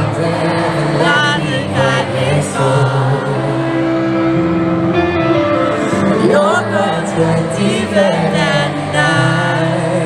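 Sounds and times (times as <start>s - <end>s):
live piano and guitar music: 0.0s - 10.0s.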